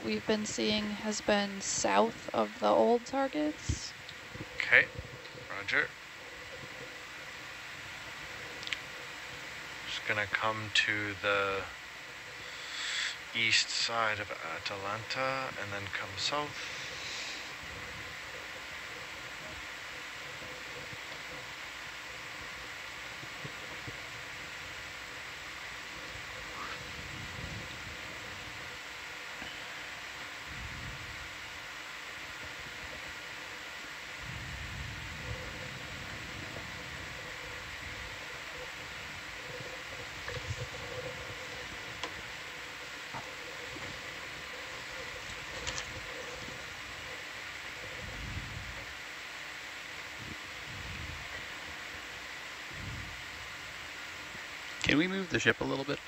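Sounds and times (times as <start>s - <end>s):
low rumbles: 0.0s - 49.1s
hiss and electronic hum: 0.0s - 56.0s
faint clicks: 8.6s - 8.9s.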